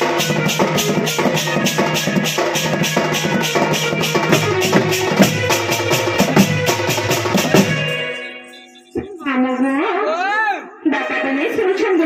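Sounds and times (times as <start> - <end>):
drum stroke: 0.0 - 9.2.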